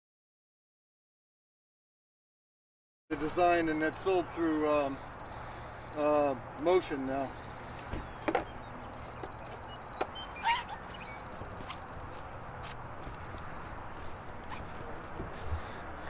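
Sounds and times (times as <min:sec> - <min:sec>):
rapid high-pitched electronic beeping: 0:03.1 - 0:04.1, 0:04.9 - 0:06.1, 0:06.8 - 0:08.0, 0:08.9 - 0:12.0, 0:12.9 - 0:13.5
outdoor background noise: 0:03.1 - 0:16.0.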